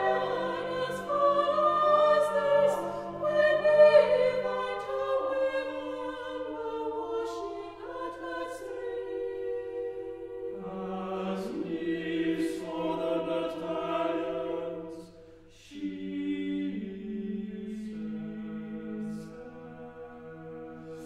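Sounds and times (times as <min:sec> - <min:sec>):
choir singing sustained chords: 0:00.0 - 0:21.0.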